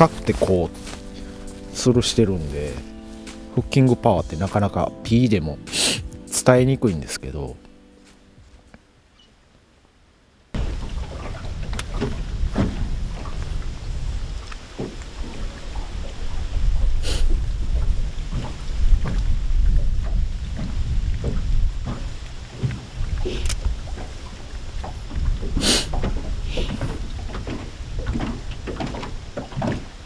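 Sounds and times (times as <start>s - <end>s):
water splashing against hull: 0.0s - 5.3s, 10.6s - 30.0s
boat engine rumble: 0.0s - 9.5s, 10.5s - 30.0s.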